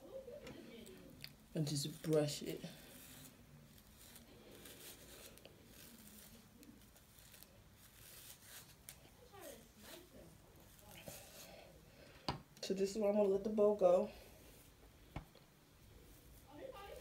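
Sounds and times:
hairbrush scratching through hair: 1.6 - 11.6, 13.8 - 14.8, 15.8 - 17.0.

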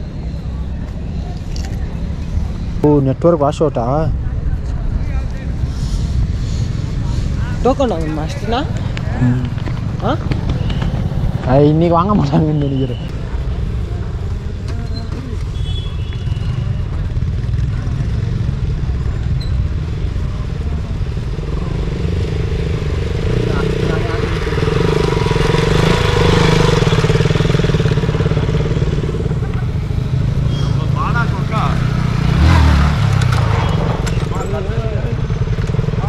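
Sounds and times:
motorcycle engine: 6.0 - 36.0.

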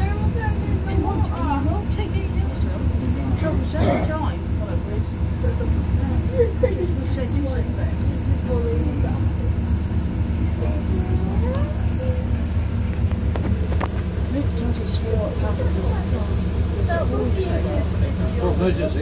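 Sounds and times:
bus diesel engine running: 0.0 - 19.0
faint voices: 0.0 - 19.0.

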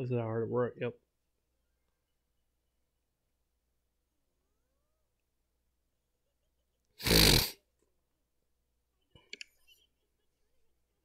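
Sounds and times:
man snorting: 7.0 - 7.7.

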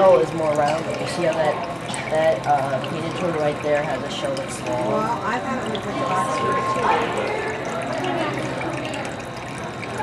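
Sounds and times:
water trickling in pond: 0.0 - 10.0.

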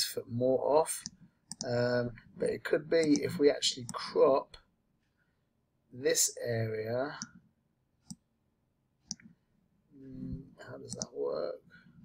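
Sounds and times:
computer mouse click: 1.0 - 1.7, 3.0 - 3.3, 8.0 - 8.2, 9.1 - 9.3, 10.9 - 11.1.

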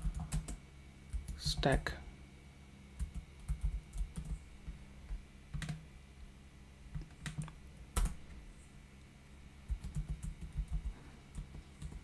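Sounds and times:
computer keyboard typing: 0.0 - 1.8, 3.0 - 5.8, 6.9 - 8.2, 9.7 - 12.0
faint low hum: 0.0 - 12.0.

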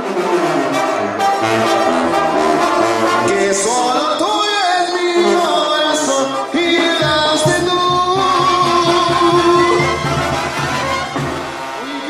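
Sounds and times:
tuba bass line: 0.0 - 11.8
brass band playing: 0.0 - 12.0.

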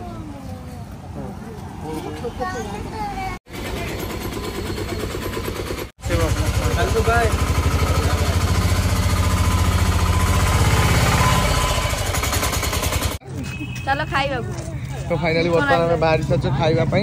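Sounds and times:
auto-rickshaw engine chugging: 3.5 - 17.0.

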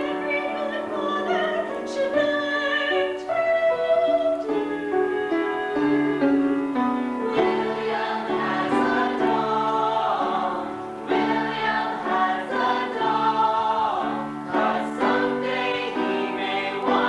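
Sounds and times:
instrumental accompaniment: 0.0 - 17.0
ensemble singing: 7.2 - 17.0.

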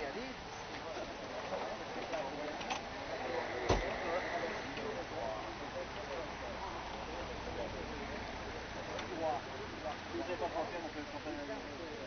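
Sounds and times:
background voices chattering: 0.0 - 12.0.

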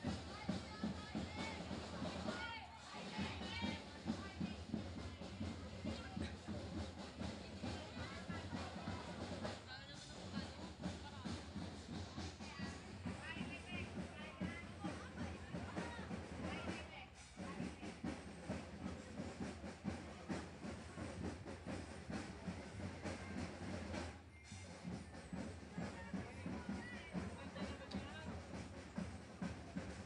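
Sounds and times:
crowd voices: 0.0 - 30.0.

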